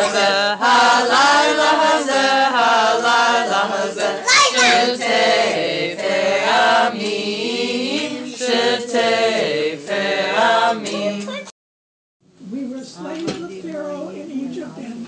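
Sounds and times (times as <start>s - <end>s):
children and adults singing: 0.0s - 11.5s.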